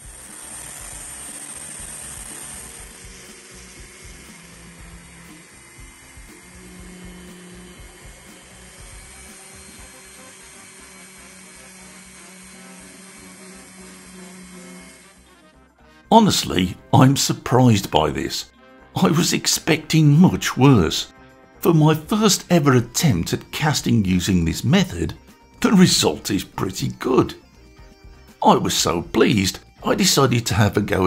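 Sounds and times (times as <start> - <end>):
rotary tool polishing metal: 0.0 - 15.4
background music: 0.0 - 31.0.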